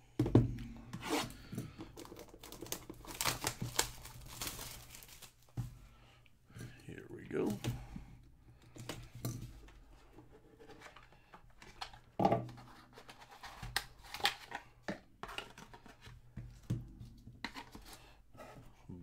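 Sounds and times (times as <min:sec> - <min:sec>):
plastic wrap tearing: 0:02.0 - 0:05.4.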